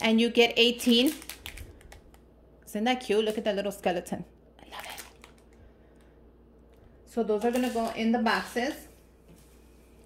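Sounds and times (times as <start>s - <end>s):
steady low hum: 0.0s - 10.0s
cellophane packaging rustling: 0.6s - 2.2s, 4.6s - 5.6s.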